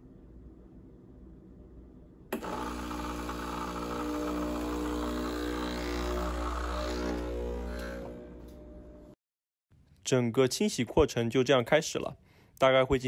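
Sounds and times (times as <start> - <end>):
espresso machine pump buzzing: 2.3 - 9.2.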